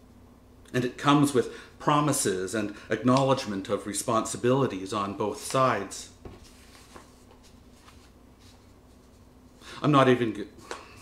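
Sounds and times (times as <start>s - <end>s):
man speaking: 0.7s - 6.2s, 9.8s - 10.6s
paper sheets rustling: 5.3s - 9.3s.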